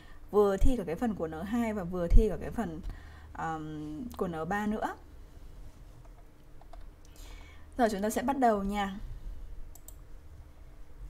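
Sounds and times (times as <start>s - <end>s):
low steady hum: 0.0s - 11.0s
faint computer clicks: 6.0s - 7.2s, 9.7s - 10.0s.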